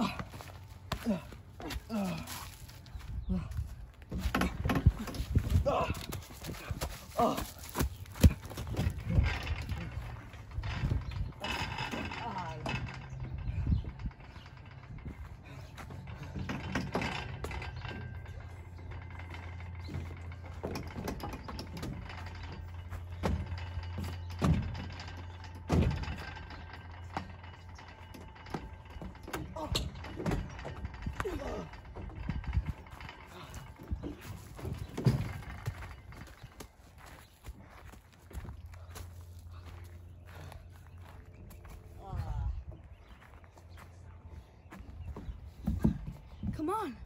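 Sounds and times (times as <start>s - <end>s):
knocks and thumps on climbing structure: 0.0s - 42.9s, 44.8s - 47.0s
footsteps on metal platform: 0.0s - 47.0s
low rumble: 0.0s - 47.0s.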